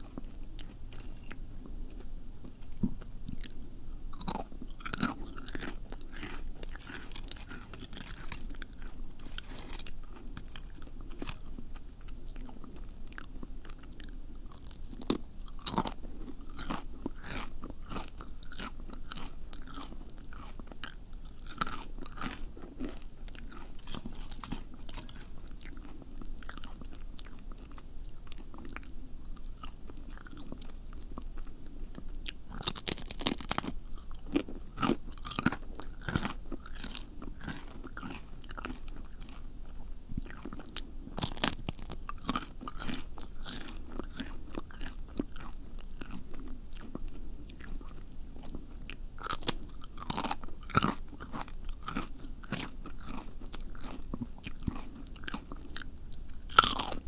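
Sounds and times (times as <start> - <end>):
crunchy biting and chewing: 0.0 - 57.0.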